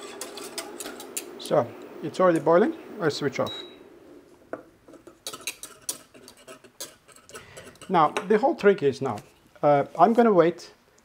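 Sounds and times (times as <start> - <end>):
wire whisk scraping metal saucepan: 0.0 - 1.6, 4.9 - 9.4.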